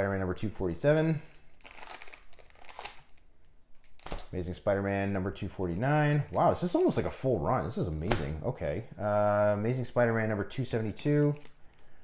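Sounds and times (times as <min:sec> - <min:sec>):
plastic bags crinkling: 0:00.8 - 0:03.2, 0:03.8 - 0:04.3, 0:10.7 - 0:11.8.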